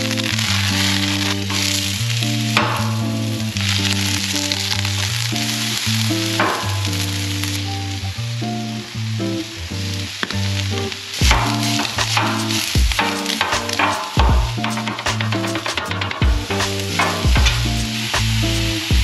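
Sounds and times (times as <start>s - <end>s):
vegetables frying on a griddle: 0.0s - 19.0s
background music: 11.1s - 19.0s.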